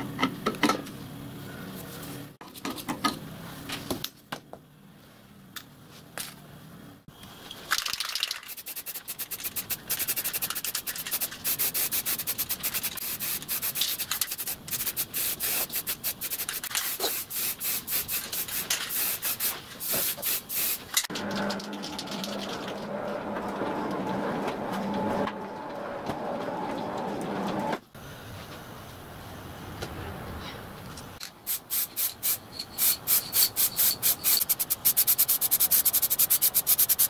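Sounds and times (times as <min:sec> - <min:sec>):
low engine hum: 0:21.1 - 0:27.8.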